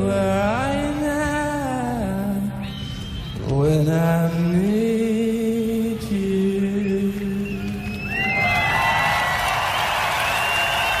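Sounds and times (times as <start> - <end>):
crowd cheering and whistling: 2.6 - 11.0.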